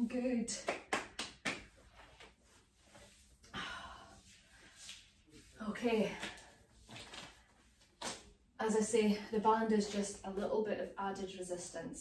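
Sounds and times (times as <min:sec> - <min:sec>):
woman breathing: 0:03.4 - 0:05.1.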